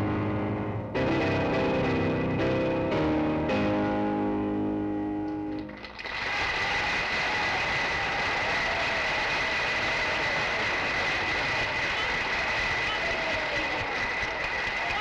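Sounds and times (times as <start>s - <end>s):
piano music: 0.0s - 5.8s
audience applauding: 5.5s - 15.0s.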